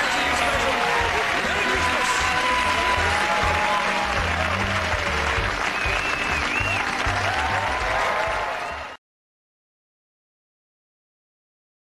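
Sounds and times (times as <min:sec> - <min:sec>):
theme music with steady beat: 0:00.0 - 0:08.2
studio audience applauding: 0:00.0 - 0:09.0.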